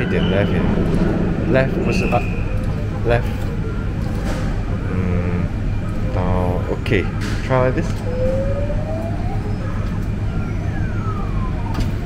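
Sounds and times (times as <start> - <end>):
claw machine electronic tones: 0.0 - 6.3
steady low hum: 0.0 - 11.7.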